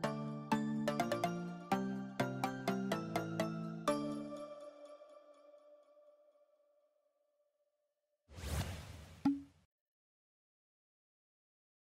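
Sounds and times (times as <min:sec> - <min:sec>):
whoosh sound effect: 0:08.4 - 0:09.4.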